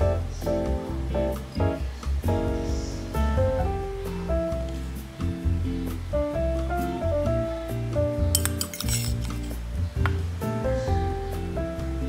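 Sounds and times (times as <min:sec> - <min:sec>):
background music: 0:00.0 - 0:12.0
spoon clinking ceramic bowl: 0:08.3 - 0:09.6.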